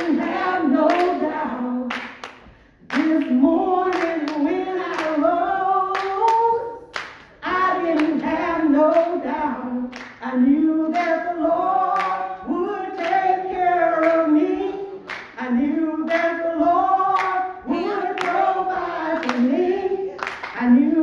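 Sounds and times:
hand claps: 0.0s - 1.2s, 1.9s - 5.2s, 5.9s - 9.2s, 9.9s - 10.2s, 11.9s - 12.3s, 13.0s - 14.3s, 15.0s - 15.4s, 17.1s - 17.5s, 19.2s - 19.5s, 20.1s - 20.7s
woman singing gospel: 0.0s - 21.0s.

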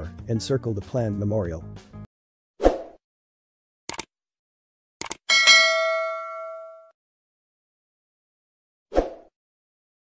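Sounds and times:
bright bell chime: 5.3s - 6.9s.

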